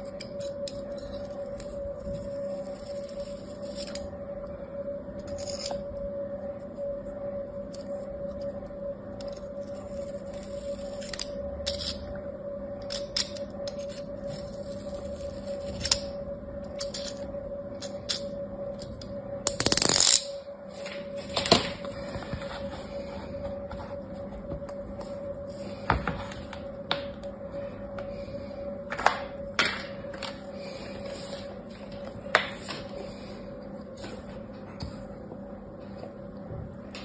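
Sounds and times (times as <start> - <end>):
soft musical drone: 0.0 - 37.0.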